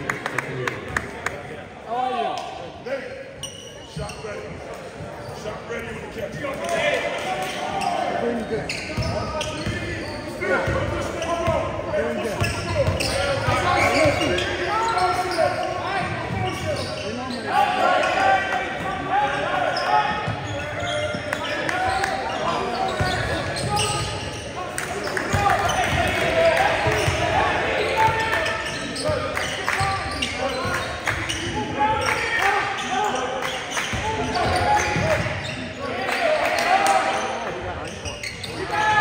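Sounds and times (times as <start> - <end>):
people talking and calling out: 0.0 - 39.0.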